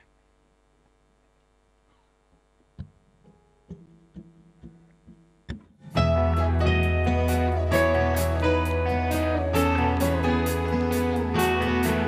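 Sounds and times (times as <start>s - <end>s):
full band playing: 5.9s - 12.0s.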